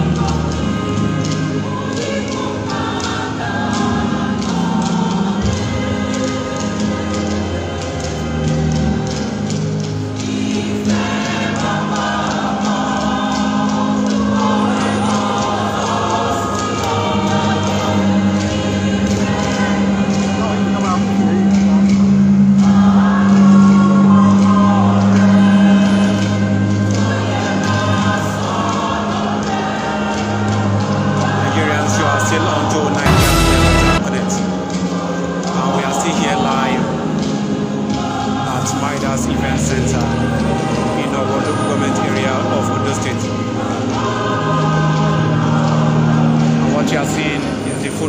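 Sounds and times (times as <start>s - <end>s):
choir singing a hymn: 0.0s - 48.0s.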